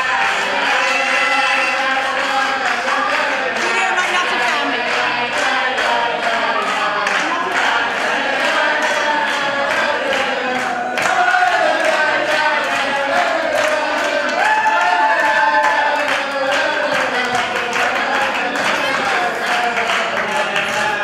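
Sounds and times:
group of people singing: 0.0s - 21.0s
rhythmic hand clapping: 0.0s - 21.0s.

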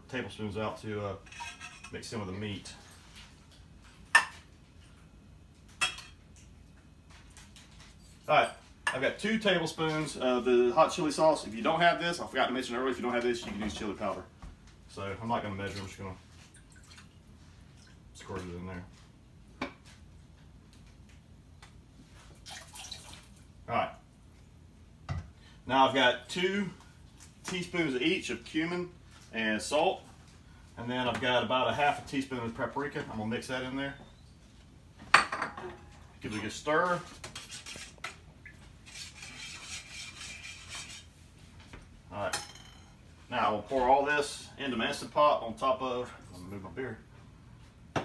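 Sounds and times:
utensil stirring in metal bowl: 37.1s - 38.2s, 38.8s - 41.2s.

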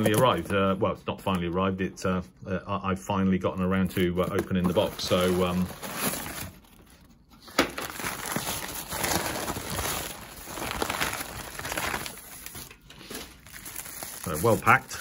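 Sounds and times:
paper rustling and crinkling: 3.7s - 15.0s
sharp paper crackle: 4.7s - 15.0s.

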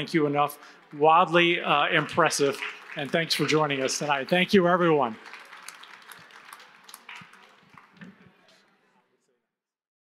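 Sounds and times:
faint audience applause: 0.0s - 9.1s.

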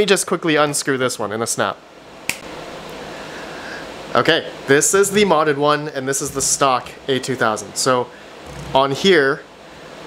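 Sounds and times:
sharp click: 2.3s - 2.5s.

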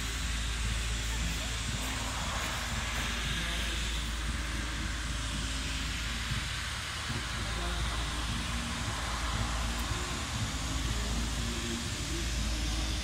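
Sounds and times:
even hiss: 0.0s - 13.0s
low rumble: 0.0s - 13.0s
faint voices: 0.3s - 13.0s.

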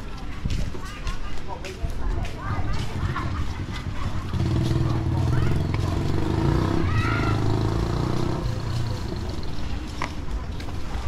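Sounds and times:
small motorbike engine running: 3.0s - 10.1s.

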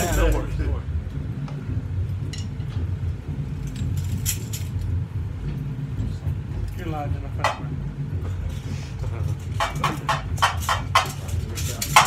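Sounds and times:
low room rumble: 0.0s - 12.0s
metallic percussion clinks and jingles: 3.6s - 5.0s.

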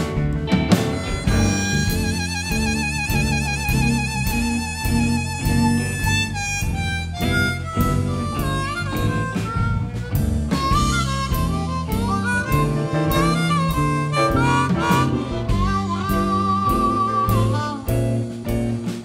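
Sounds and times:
band with drums and bass: 0.0s - 19.0s
blues harmonica solo: 0.0s - 19.0s.

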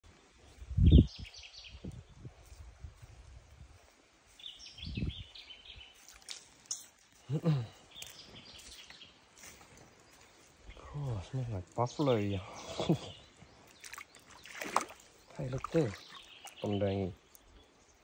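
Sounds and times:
birds chirping: 0.0s - 3.1s, 4.0s - 18.0s
footsteps in shallow water: 5.5s - 7.2s, 7.9s - 10.6s, 13.3s - 17.9s.

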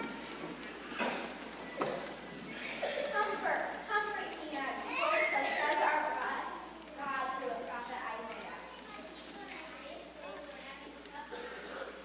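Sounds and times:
child speaking: 2.8s - 11.9s.

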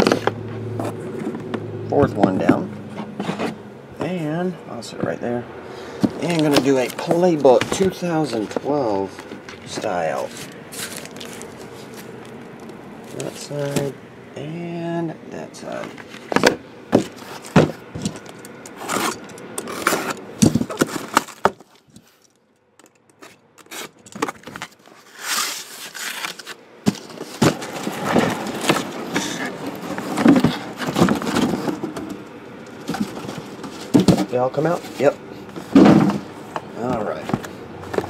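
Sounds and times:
cardboard knocks and scrapes: 2.2s - 3.6s, 6.0s - 12.4s, 15.8s - 18.3s, 23.6s - 32.1s, 32.8s - 38.0s
shrink-wrap rustling: 6.0s - 14.0s, 15.6s - 38.0s.

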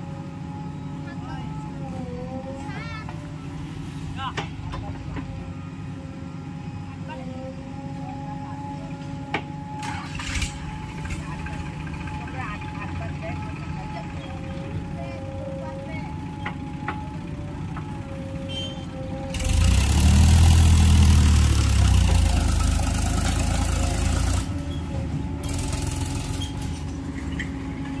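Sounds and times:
backhoe diesel engine running: 0.0s - 28.0s
tractor engine rumbling: 0.0s - 28.0s.

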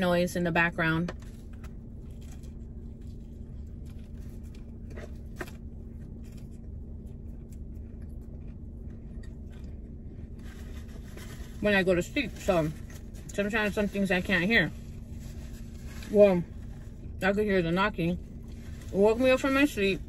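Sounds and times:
car cabin hum: 0.0s - 20.0s
soft chewing: 1.4s - 11.5s.

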